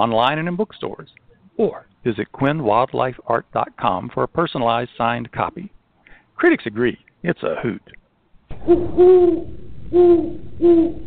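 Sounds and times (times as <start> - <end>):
owl hooting: 8.6 - 11.0.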